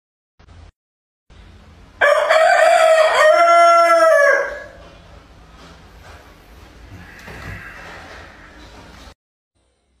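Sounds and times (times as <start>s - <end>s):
rooster crowing: 2.0s - 4.8s.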